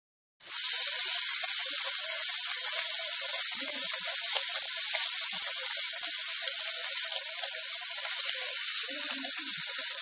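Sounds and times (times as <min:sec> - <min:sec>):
meat sizzling on a griddle: 0:00.4 - 0:10.0.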